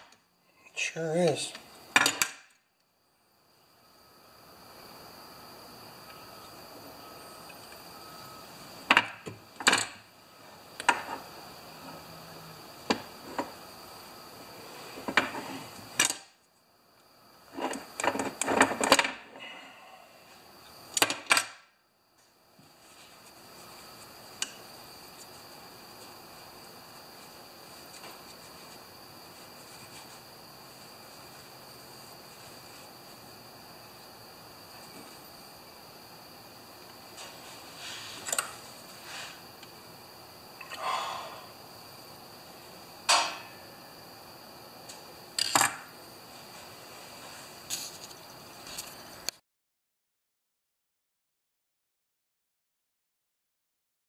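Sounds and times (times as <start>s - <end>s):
steady hum: 22.4s - 45.3s.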